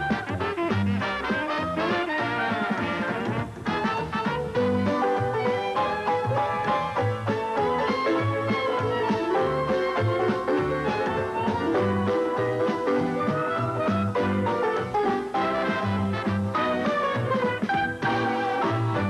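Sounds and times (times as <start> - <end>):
upbeat instrumental music: 0.0 - 19.0.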